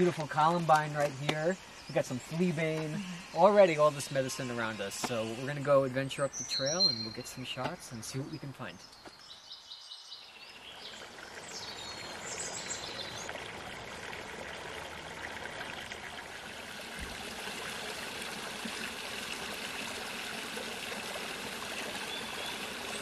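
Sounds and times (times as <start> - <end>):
stream flowing over rocks: 0.0 - 5.9, 10.4 - 23.0.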